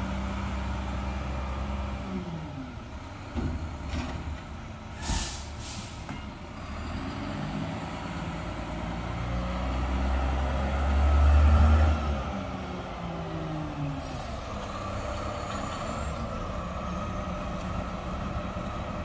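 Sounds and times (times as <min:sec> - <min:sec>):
garbage truck engine: 0:00.0 - 0:19.0
air brakes hissing: 0:04.9 - 0:06.3, 0:13.6 - 0:15.6.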